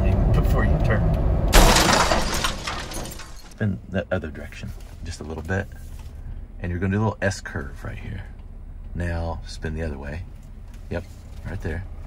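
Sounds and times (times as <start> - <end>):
car road noise: 0.0 - 3.6
glass shattering: 1.5 - 3.6.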